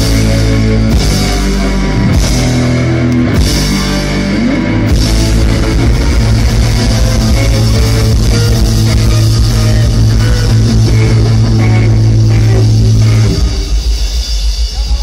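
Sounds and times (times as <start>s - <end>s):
bass guitar: 0.0s - 15.0s
drums: 0.0s - 15.0s
electric guitar: 0.0s - 15.0s.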